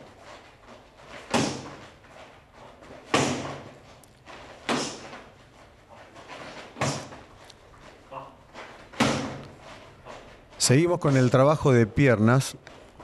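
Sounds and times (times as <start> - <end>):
kicks slapping padded gloves: 1.1 - 2.0, 2.9 - 3.8, 4.6 - 5.3, 6.4 - 7.3, 8.9 - 9.5.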